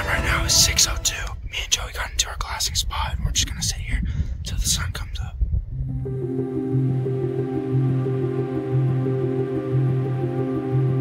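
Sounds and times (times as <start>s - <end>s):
slow ambient music: 0.0s - 1.6s, 5.8s - 11.0s
man whispering: 0.0s - 5.5s
low rumble: 0.0s - 11.0s.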